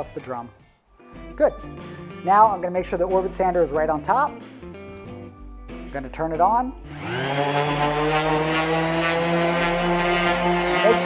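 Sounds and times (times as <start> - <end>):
orbital sander running: 6.9 - 11.0.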